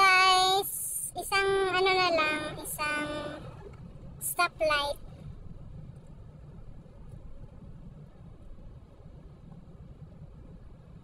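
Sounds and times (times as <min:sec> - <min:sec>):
car driving heard from inside: 0:00.0 - 0:11.0.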